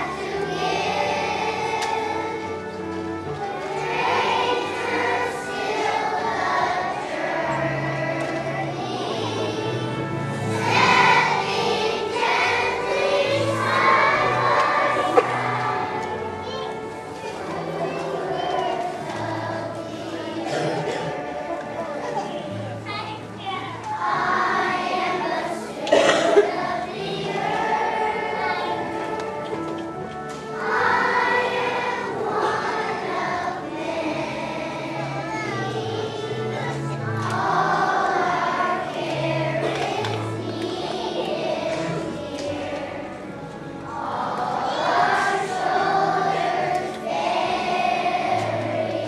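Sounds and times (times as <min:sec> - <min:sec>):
children's choir singing: 0:00.0 - 0:49.0
musical accompaniment: 0:00.0 - 0:49.0.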